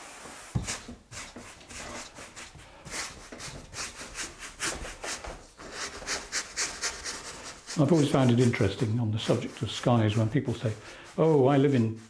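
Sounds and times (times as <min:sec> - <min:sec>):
bristle brush scrubbing paint on wood: 0:00.0 - 0:12.0.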